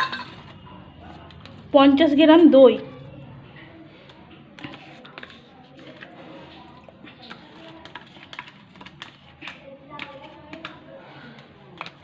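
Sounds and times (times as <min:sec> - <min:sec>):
kitchen utensils tapping: 0:00.0 - 0:00.5
faint background voices: 0:00.0 - 0:12.0.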